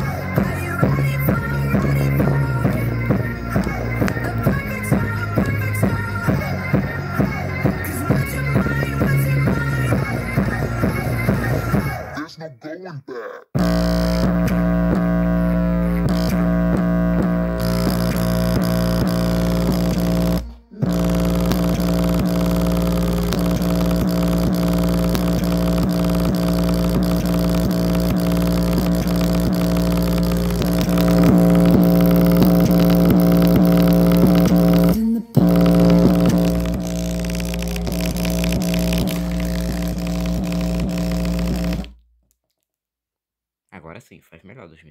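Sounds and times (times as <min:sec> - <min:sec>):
speaker radiator flexing: 0:00.0 - 0:11.9, 0:13.6 - 0:42.0
bass-heavy music through speaker: 0:00.0 - 0:12.8, 0:13.6 - 0:41.9.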